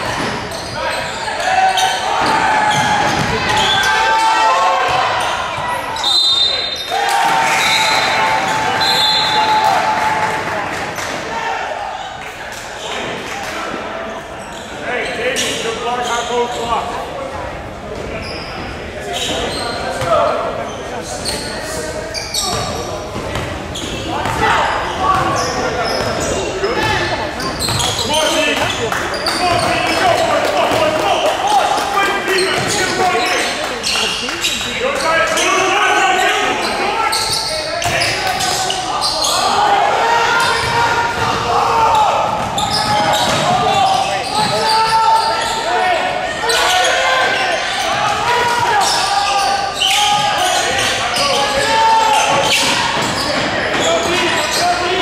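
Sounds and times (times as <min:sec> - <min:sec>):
people shouting and talking: 0:00.0 - 0:55.0.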